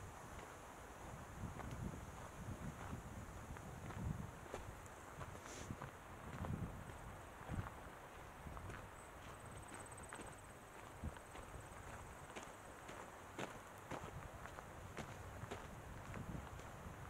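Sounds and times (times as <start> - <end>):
footsteps on dirt trail: 0.2 - 17.0.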